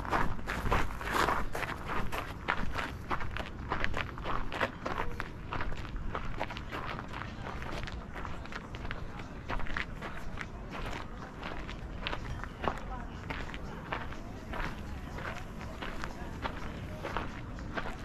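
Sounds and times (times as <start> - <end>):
footsteps on a path: 0.0 - 18.0
people talking indistinctly: 4.8 - 18.0.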